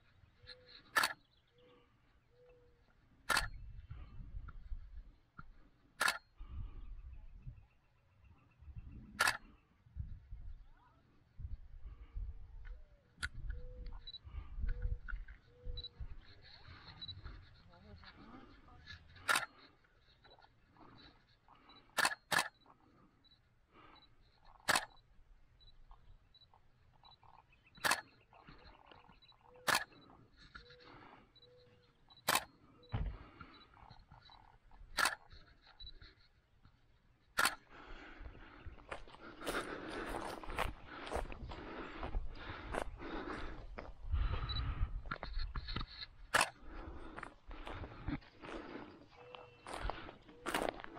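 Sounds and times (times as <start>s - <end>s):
camera shutter firing: 9.2s - 9.4s, 22.0s - 22.6s, 24.6s - 25.0s, 27.8s - 28.1s, 29.6s - 30.0s, 32.2s - 32.6s, 34.9s - 35.3s, 37.4s - 37.6s, 46.3s - 46.6s.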